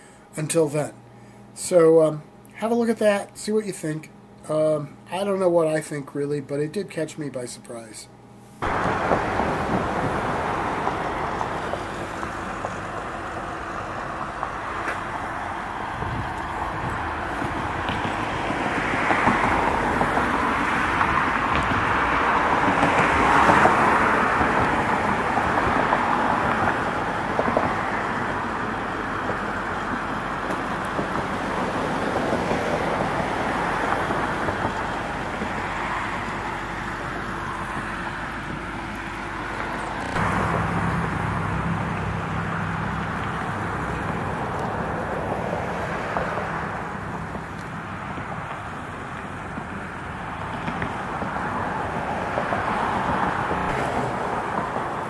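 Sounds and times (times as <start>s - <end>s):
road traffic rushing: 8.5s - 55.0s
car passing by: 8.6s - 55.0s.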